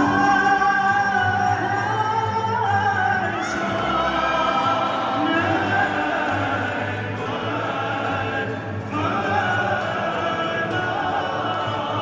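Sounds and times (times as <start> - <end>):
acoustic guitar accompaniment: 0.0 - 12.0
male choir singing: 0.0 - 12.0.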